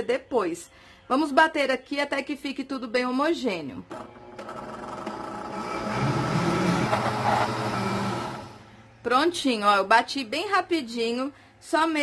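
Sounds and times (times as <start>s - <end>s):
blender motor running: 4.0s - 8.7s.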